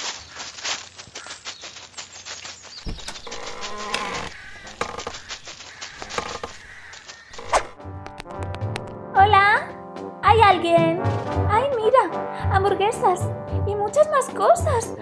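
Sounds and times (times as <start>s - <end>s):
insect buzzing: 2.8s - 7.8s
soft background music: 7.4s - 15.0s.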